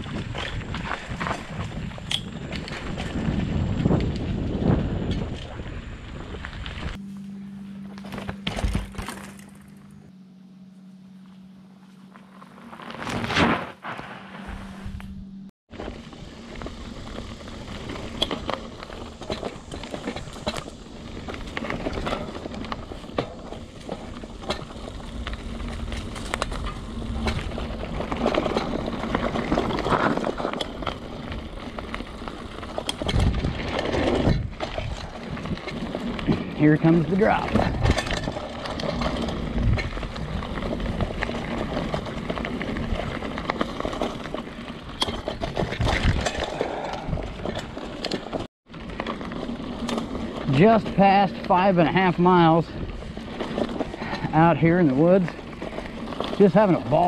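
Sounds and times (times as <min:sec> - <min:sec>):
bike rattling and knocking: 0:00.0 - 0:06.9, 0:08.0 - 0:09.9, 0:15.7 - 0:57.0
bike tyres rolling over dirt: 0:00.0 - 0:10.1, 0:10.8 - 0:57.0
steady low hum: 0:02.2 - 0:13.2, 0:13.9 - 0:33.8.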